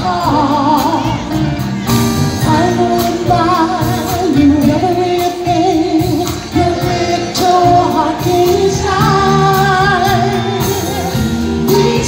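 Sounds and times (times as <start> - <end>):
drums: 0.0 - 12.0
vocal group singing in harmony: 2.6 - 12.0.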